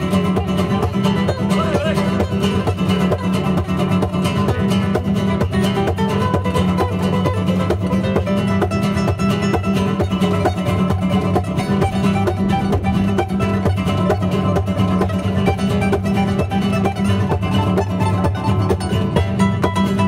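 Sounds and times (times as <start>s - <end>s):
flamenco guitars playing rumba: 0.0s - 20.0s.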